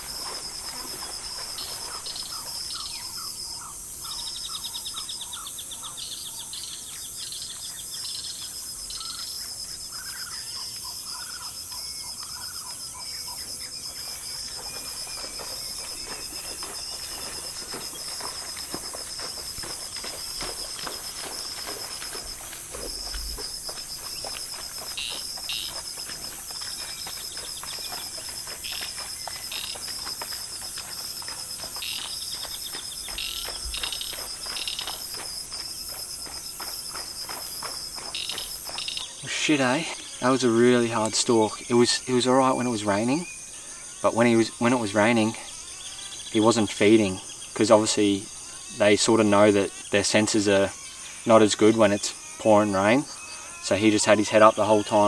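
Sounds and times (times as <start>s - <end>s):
insects droning: 0.0s - 55.0s.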